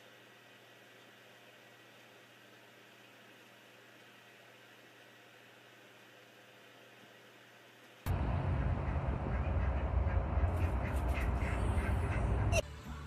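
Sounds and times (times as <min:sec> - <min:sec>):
loud low rumble: 0:08.1 - 0:12.6.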